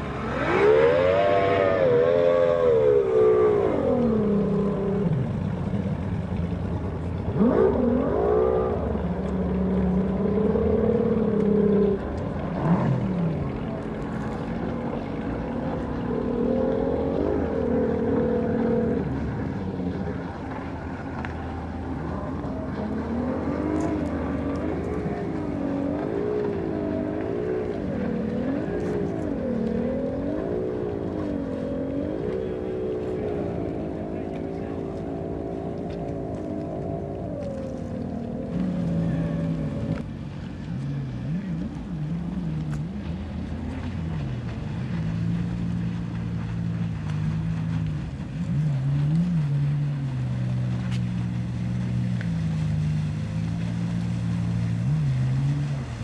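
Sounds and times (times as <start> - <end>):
personal watercraft engine running: 0.0 - 56.0.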